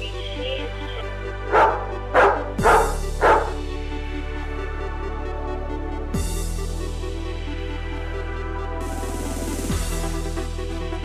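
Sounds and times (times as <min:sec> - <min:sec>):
electronic music with low beat: 0:00.0 - 0:11.0
dog barking: 0:01.4 - 0:03.6.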